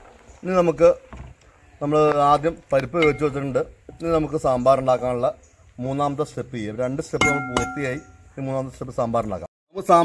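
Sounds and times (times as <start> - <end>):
man talking: 1.8 - 10.0
spatula clinking on metal pot: 7.2 - 8.2.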